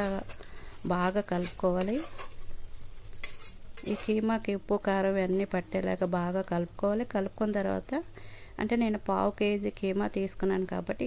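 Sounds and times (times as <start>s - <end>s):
metal spoon scraping a pot: 0.0s - 6.2s.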